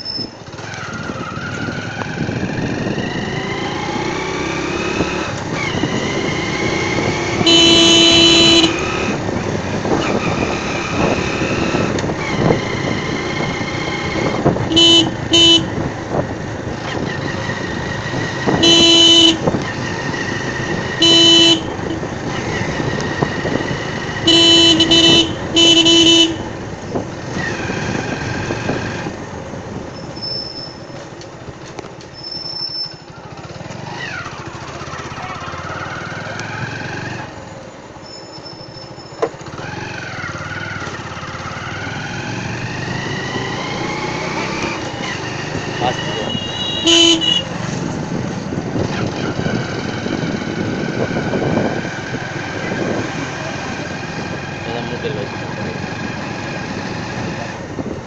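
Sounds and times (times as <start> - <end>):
vehicle horn honking: 7.3 - 9.1, 14.6 - 15.8, 18.5 - 19.6, 20.9 - 22.1, 24.2 - 26.6, 46.0 - 47.6.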